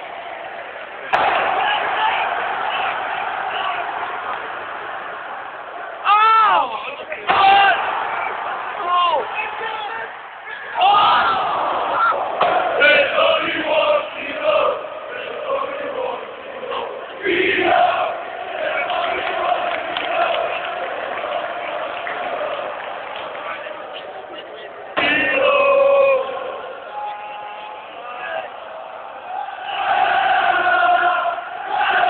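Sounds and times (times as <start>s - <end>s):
stadium crowd shouting and chanting: 0.0s - 32.0s
crowd singing held note: 10.5s - 22.4s, 28.7s - 32.0s.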